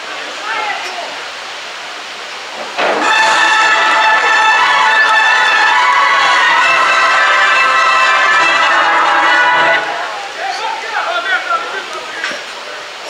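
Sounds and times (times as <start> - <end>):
brass band playing chords: 2.8 - 10.4
crowd murmur: 2.9 - 13.0.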